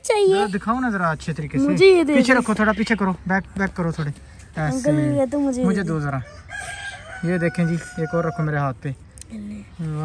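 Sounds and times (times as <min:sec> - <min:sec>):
rooster crowing: 0:06.1 - 0:08.7.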